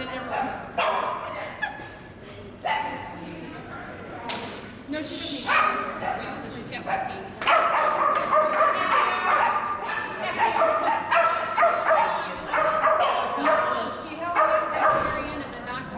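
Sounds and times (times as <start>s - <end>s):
dog barking and yipping: 7.5s - 13.8s, 14.4s - 15.2s.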